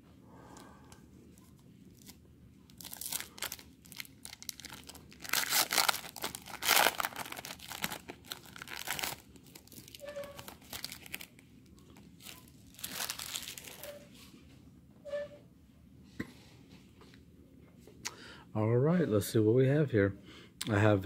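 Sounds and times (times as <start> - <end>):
foil wrapper crinkling and tearing: 1.9 - 14.0.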